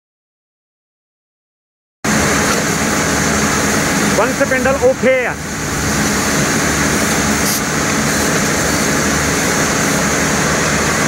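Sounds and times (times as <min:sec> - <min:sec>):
loud machinery running: 0:02.1 - 0:11.0.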